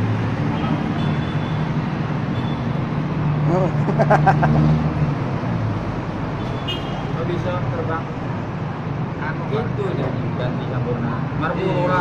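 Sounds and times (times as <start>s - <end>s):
men talking: 3.4s - 4.4s, 7.1s - 8.4s, 9.3s - 12.0s.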